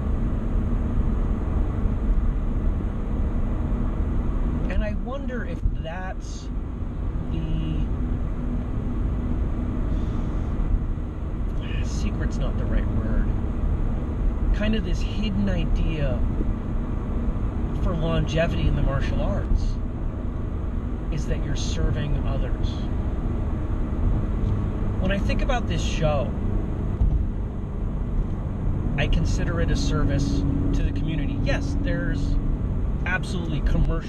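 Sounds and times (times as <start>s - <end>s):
car cabin road and engine rumble: 0.0s - 34.0s
man talking: 4.7s - 6.5s, 7.2s - 8.0s, 11.6s - 13.4s, 14.5s - 16.3s, 17.8s - 19.8s, 21.1s - 22.9s, 25.0s - 26.4s, 29.0s - 32.4s, 33.0s - 34.0s.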